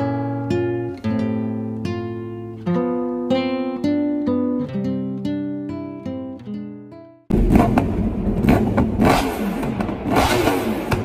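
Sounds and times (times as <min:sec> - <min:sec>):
motorcycle engines revving: 0:07.3 - 0:11.0.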